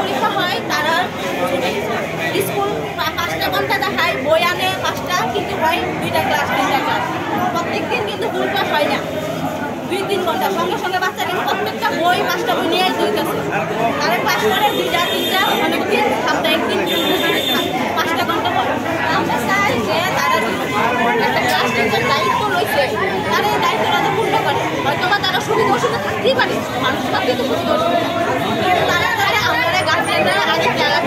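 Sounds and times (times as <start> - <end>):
woman talking: 0.0 - 9.1, 14.0 - 28.0
background voices chattering: 0.0 - 31.0.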